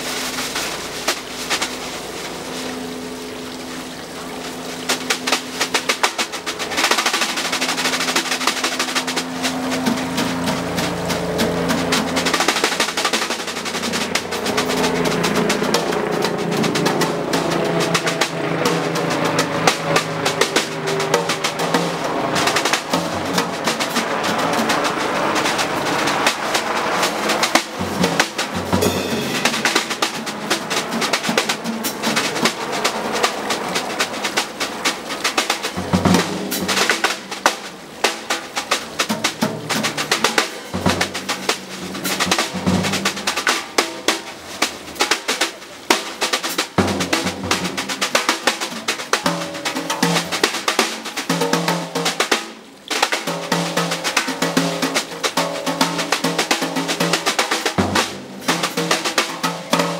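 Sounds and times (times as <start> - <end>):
drums and cymbals: 0.0 - 3.6, 4.3 - 59.9.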